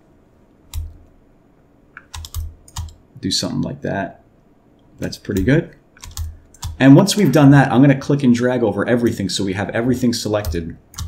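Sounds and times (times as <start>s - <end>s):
computer keyboard typing: 2.0s - 3.0s, 5.3s - 6.8s, 10.4s - 11.0s.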